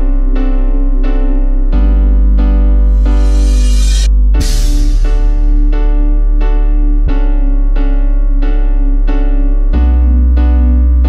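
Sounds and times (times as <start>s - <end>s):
deep bass: 0.0s - 11.0s
keyboard chords: 0.0s - 11.0s.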